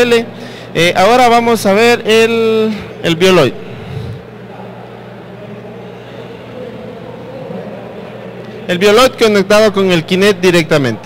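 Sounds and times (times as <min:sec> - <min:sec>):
steady low hum: 0:00.0 - 0:08.5.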